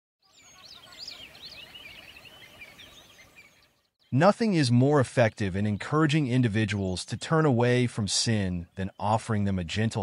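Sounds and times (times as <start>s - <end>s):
small birds chirping and singing: 0.2s - 10.0s.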